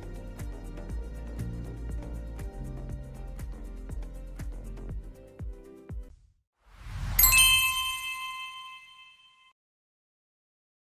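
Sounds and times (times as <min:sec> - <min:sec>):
bright bell-like ding: 0:07.2 - 0:09.5.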